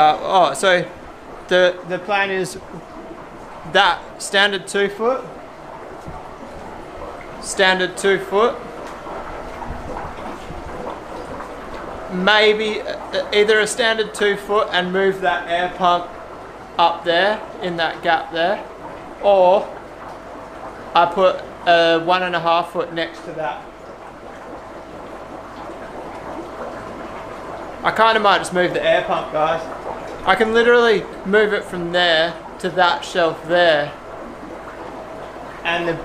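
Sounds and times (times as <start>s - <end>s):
equipment hum and hiss: 0.0s - 36.0s.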